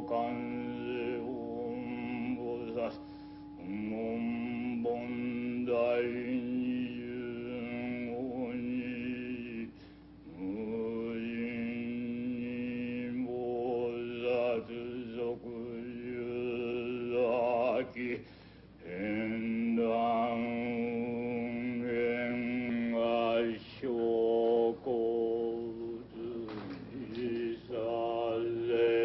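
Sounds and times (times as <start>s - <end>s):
deep male voice chanting: 18.8s - 29.0s.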